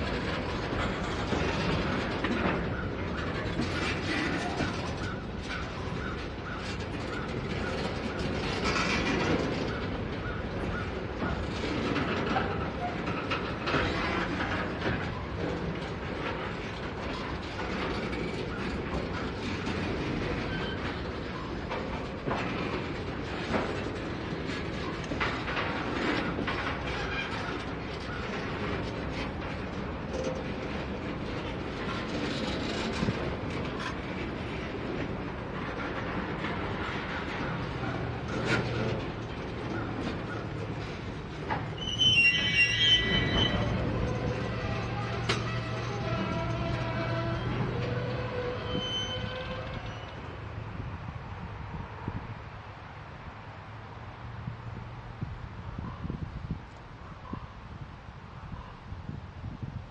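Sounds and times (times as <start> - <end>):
steel wheels clicking on rails: 0.0 - 59.9
train rolling slowly past: 0.0 - 59.9.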